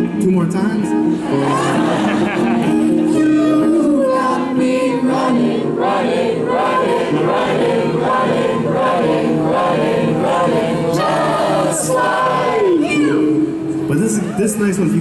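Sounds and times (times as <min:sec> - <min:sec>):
sustained backing tone: 0:00.8 - 0:15.0
voices singing wordless melody: 0:01.1 - 0:13.8.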